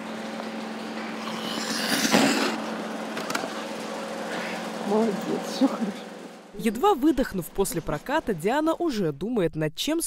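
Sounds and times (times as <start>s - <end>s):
skate blades scraping ice: 1.2s - 2.7s.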